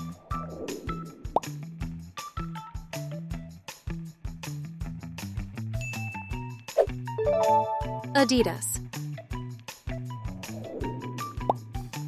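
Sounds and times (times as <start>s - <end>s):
upbeat background music: 5.5s - 12.0s.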